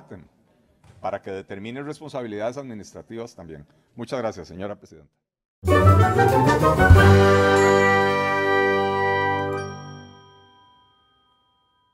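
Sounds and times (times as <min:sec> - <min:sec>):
ringing chime chord: 0:07.2 - 0:11.9.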